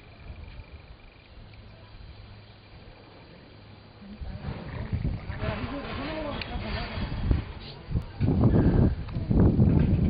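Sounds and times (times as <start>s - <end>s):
engine rumbling: 0.0s - 10.0s.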